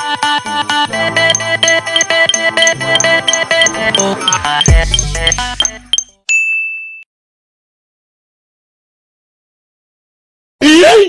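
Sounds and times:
game show chiming music: 1.0s - 6.1s
high ding sound effect: 1.2s - 7.0s.

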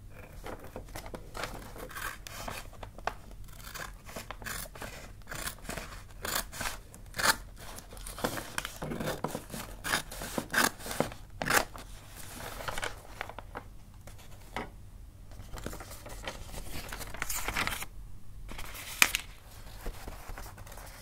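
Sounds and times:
scissors cutting wrapping paper: 1.4s - 2.7s, 3.5s - 11.7s.

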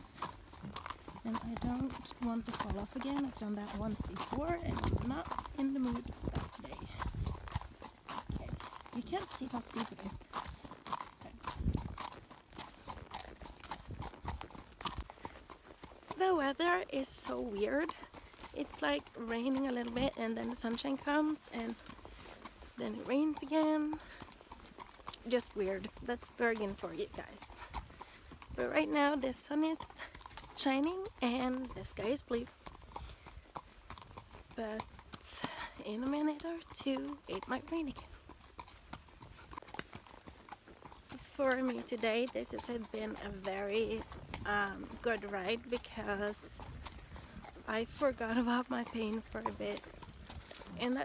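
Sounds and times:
horse hooves on gravel: 0.0s - 51.0s.

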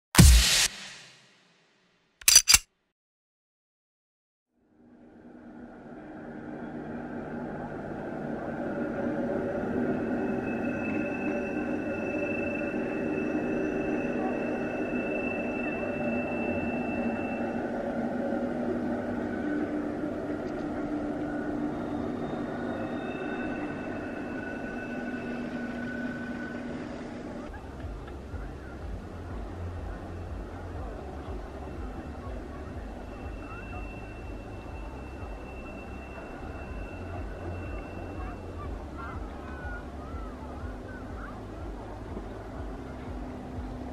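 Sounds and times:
electric train whine: 4.8s - 43.9s
high-pitched tone: 8.5s - 27.4s.

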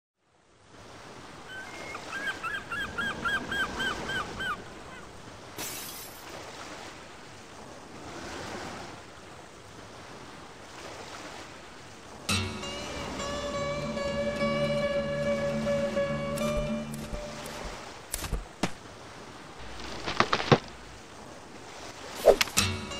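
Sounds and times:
sea waves washing in: 0.5s - 22.9s.

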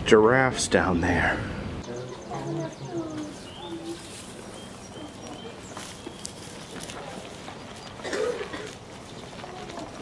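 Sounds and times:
people talking: 0.0s - 6.0s, 6.8s - 8.6s, 9.3s - 10.0s
bird chirps: 1.8s - 8.0s.

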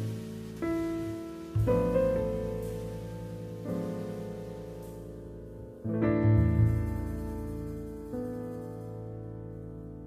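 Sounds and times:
slow jazz piano trio music: 0.0s - 10.0s.

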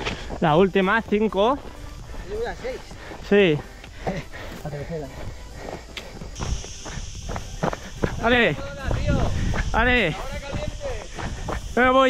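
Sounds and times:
footsteps crunching on rocky path: 0.0s - 12.0s
steady high hiss: 0.0s - 12.0s
wind rumble on microphone: 7.9s - 11.8s.

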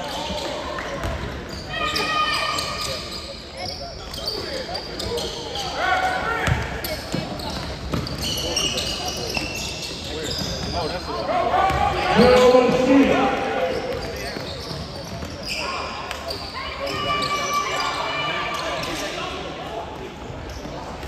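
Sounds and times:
sneaker squeaks: 0.0s - 12.7s, 13.6s - 19.4s, 20.1s - 21.0s.

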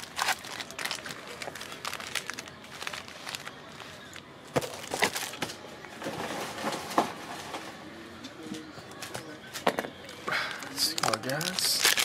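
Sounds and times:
foil wrappers crinkling: 0.0s - 5.4s, 10.6s - 12.0s.

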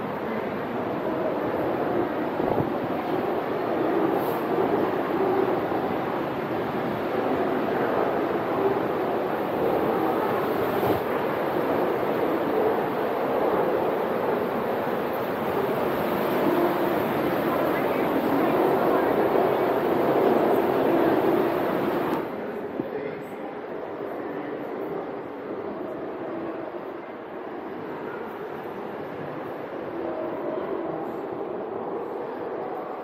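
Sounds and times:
ocean swell churning in cave: 0.6s - 22.4s.

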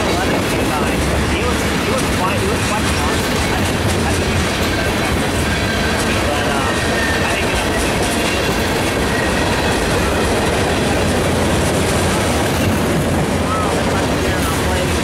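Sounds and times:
clickety-clack over rail joints: 0.0s - 15.0s
train wheels rumbling on rail: 0.0s - 15.0s
faint high wheel squeal: 5.5s - 10.2s.

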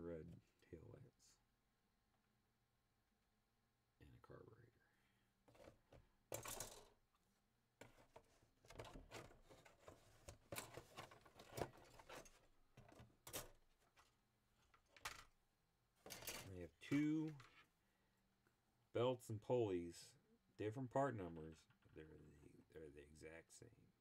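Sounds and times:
plastic parts rustling and clicking: 5.5s - 7.0s, 7.8s - 15.4s, 16.0s - 17.7s.

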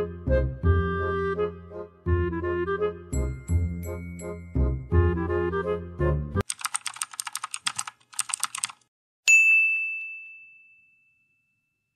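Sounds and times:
background music: 0.0s - 6.5s
computer keyboard typing clicks: 6.4s - 8.8s
bright bell ding: 9.3s - 11.9s.

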